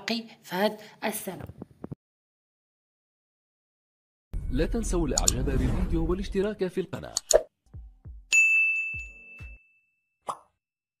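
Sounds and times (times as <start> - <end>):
bright bell-like ding: 8.3 - 10.0.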